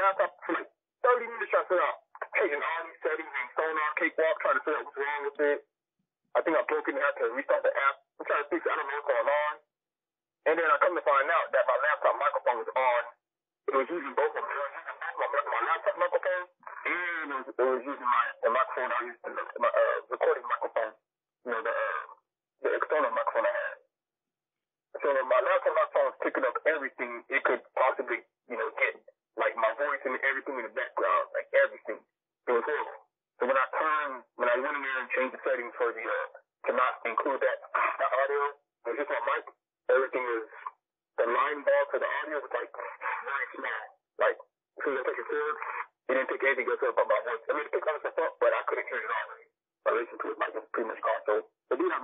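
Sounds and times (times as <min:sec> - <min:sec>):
person talking: 0:00.0 - 0:05.6, 0:06.4 - 0:09.6, 0:10.5 - 0:13.1, 0:13.7 - 0:20.9, 0:21.5 - 0:23.8, 0:25.0 - 0:52.0.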